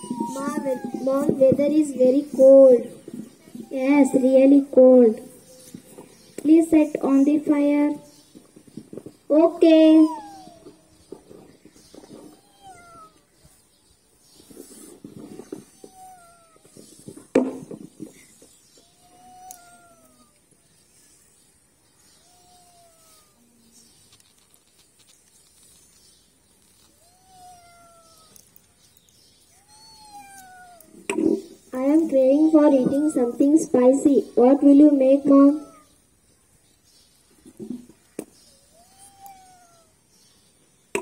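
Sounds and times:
cat-like meowing: 0.0s - 2.6s, 3.5s - 4.6s, 9.7s - 10.9s, 12.1s - 13.3s, 14.8s - 17.2s, 18.8s - 20.4s, 22.1s - 23.9s, 26.9s - 28.5s, 29.5s - 33.9s, 35.2s - 36.0s, 38.5s - 40.0s.

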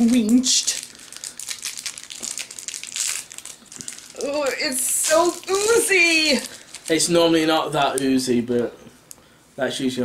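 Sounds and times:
plastic wrapper crinkling and tearing: 0.0s - 8.2s.

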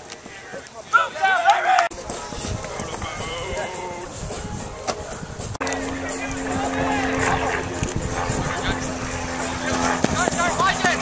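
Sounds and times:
people shouting and calling: 0.0s - 5.2s, 5.9s - 7.8s, 8.5s - 11.0s
steady low hum: 1.9s - 11.0s.

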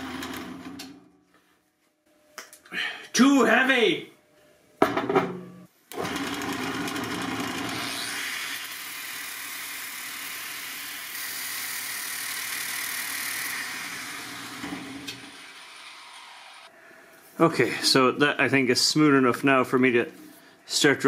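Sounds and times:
angle grinder grinding steel: 6.0s - 16.7s.

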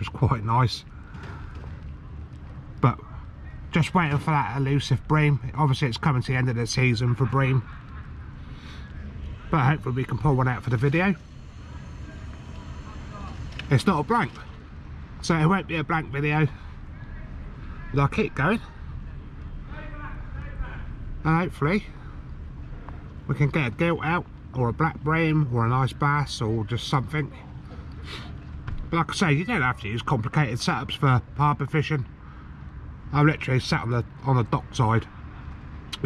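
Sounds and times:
man speaking: 0.0s - 0.8s, 2.8s - 3.1s, 3.7s - 7.6s, 9.5s - 11.2s, 13.6s - 14.5s, 15.2s - 16.6s, 17.8s - 18.7s, 19.7s - 22.0s, 23.3s - 27.4s, 28.9s - 32.1s, 33.1s - 35.1s
low rumble: 0.0s - 25.6s
outdoor background noise: 0.0s - 36.0s.

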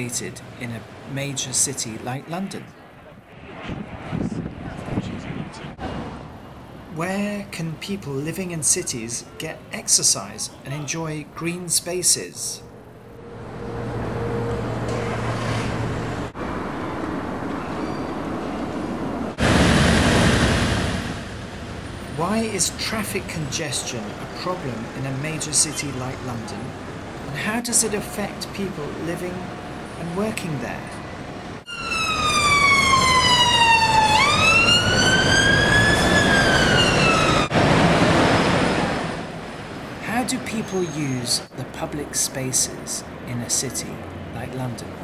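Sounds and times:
city street traffic: 0.0s - 45.0s
distant road traffic: 0.0s - 45.0s
wind: 0.0s - 45.0s
ambulance siren wailing: 31.7s - 37.6s.

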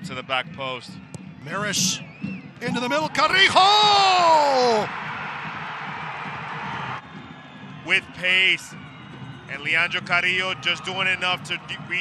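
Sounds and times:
stadium crowd cheering: 1.2s - 12.0s.

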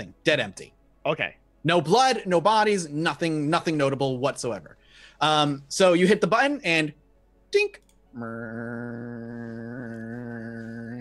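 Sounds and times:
man humming low note: 8.2s - 11.0s.

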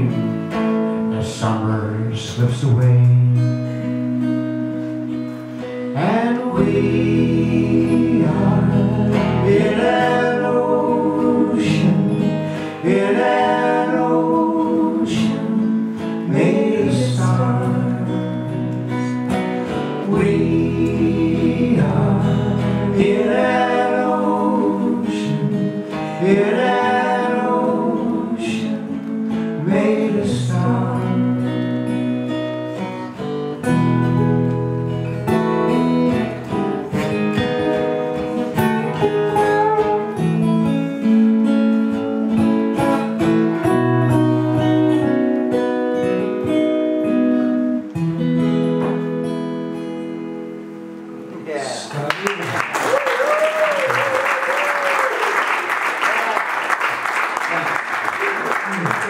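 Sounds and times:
two acoustic guitars playing: 0.0s - 59.0s
audience applause: 52.0s - 59.0s.

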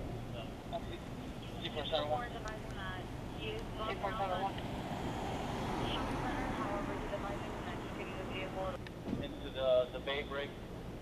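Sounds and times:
steady low hum: 0.0s - 11.0s
faint police radio voices: 0.3s - 4.6s, 5.8s - 10.6s.

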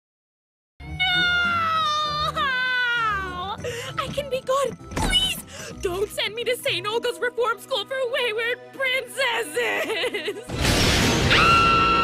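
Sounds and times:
cartoon girl wailing: 1.0s - 3.6s.

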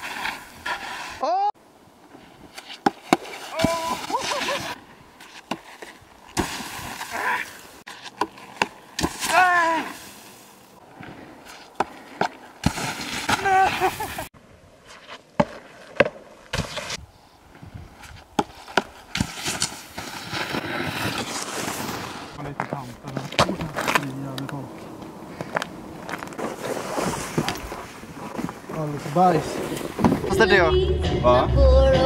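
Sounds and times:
snowboard scraping on packed snow: 0.0s - 1.2s, 2.2s - 11.7s, 12.6s - 14.3s, 18.5s - 22.9s, 26.3s - 30.4s
person shouting: 1.2s - 1.5s, 3.5s - 4.5s, 9.2s - 10.0s, 13.4s - 14.0s.

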